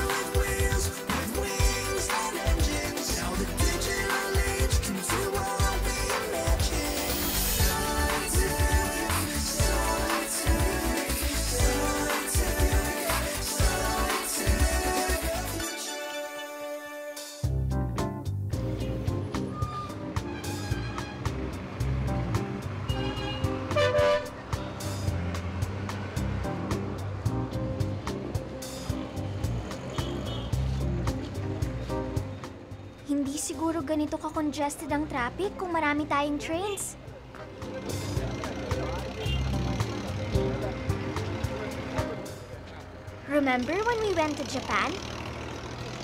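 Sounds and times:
traffic engines rumbling: 0.0 - 15.5, 18.4 - 46.0
music with a steady beat: 0.0 - 16.0, 17.2 - 32.8, 37.6 - 43.2
car horn honking: 22.9 - 24.4, 29.9 - 30.6, 39.1 - 39.7.

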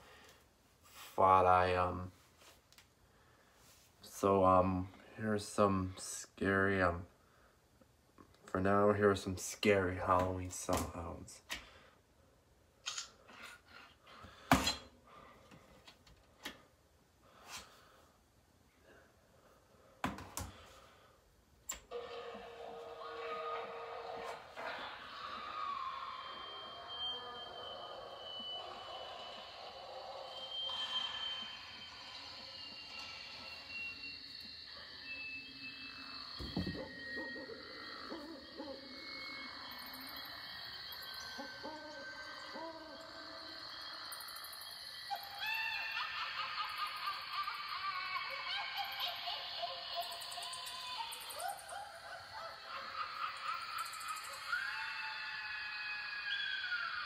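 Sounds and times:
eerie drawn-out tones: 21.9 - 57.0.

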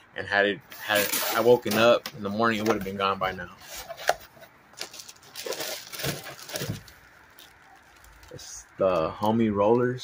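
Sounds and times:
plastic bag crinkling: 4.7 - 9.0.

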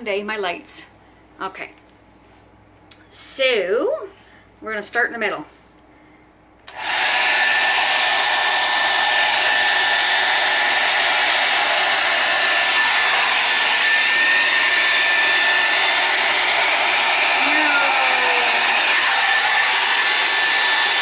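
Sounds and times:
blow dryer running: 6.7 - 21.0.

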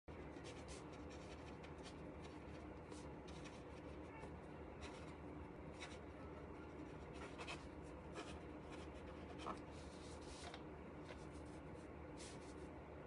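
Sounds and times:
low room hum: 0.0 - 13.0
faint scratches and rustles: 0.1 - 12.8.

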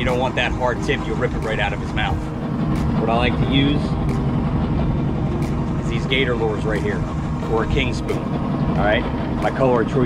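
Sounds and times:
boat engine humming: 0.0 - 10.0.

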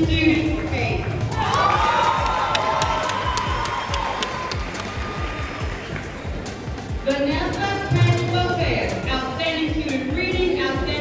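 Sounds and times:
scattered claps: 0.6 - 6.2
person cheering: 1.4 - 5.5.

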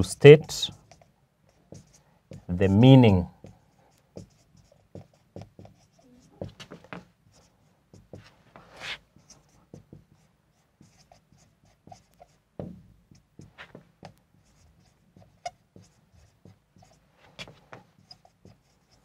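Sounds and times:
marker scratching on whiteboard: 0.0 - 19.0.

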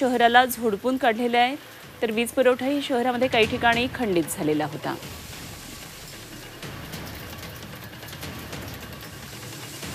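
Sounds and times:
quiet background music: 0.0 - 9.9
raindrops tapping: 0.0 - 9.9
heavy rain hissing: 4.9 - 9.9.

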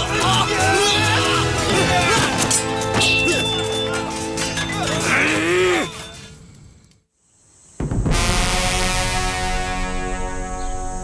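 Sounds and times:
dramatic orchestral music: 0.0 - 5.3
man's wavering cry: 5.0 - 6.0.

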